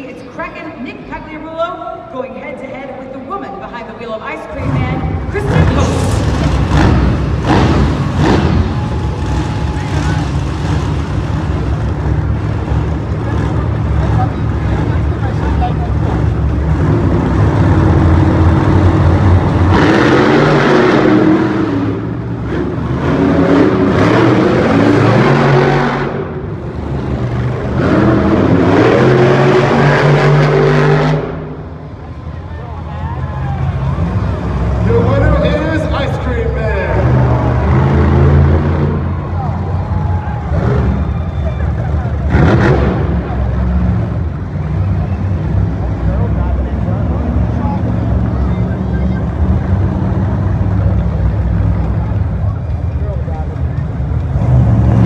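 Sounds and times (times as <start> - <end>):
monster truck engines revving: 0.0 - 55.0.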